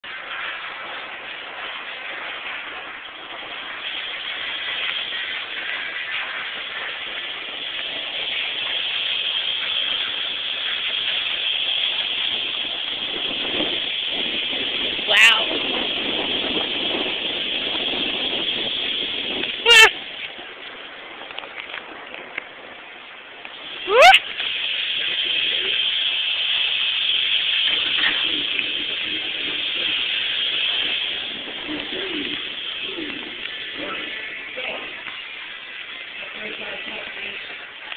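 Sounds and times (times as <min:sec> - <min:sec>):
person screaming: 0:23.9 - 0:24.2.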